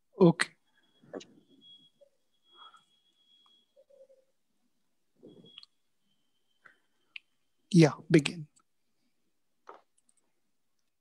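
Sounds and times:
faint high whine: 0.0s - 9.3s.

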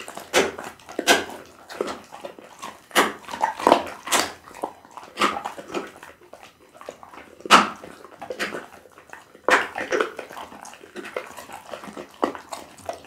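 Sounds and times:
dog chewing raw meat: 0.0s - 13.0s.

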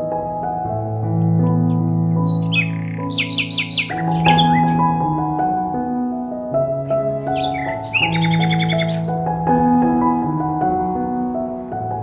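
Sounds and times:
soft music of sustained chords: 0.0s - 12.0s
bird chirping: 1.5s - 5.1s, 6.8s - 9.2s.

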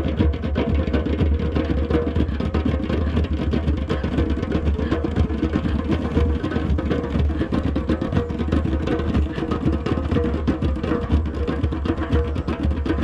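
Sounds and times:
hand drums playing: 0.0s - 13.0s.

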